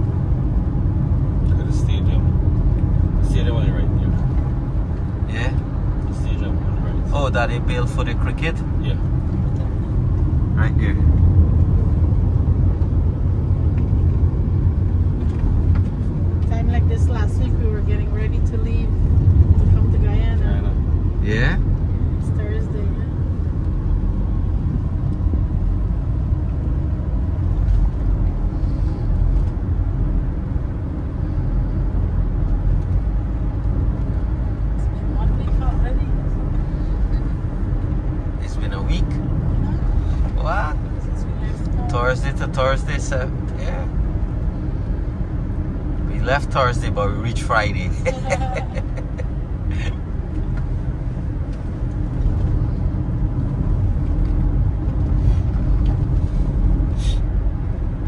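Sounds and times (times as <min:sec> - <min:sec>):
car cabin road and engine rumble: 0:00.0 - 0:58.0.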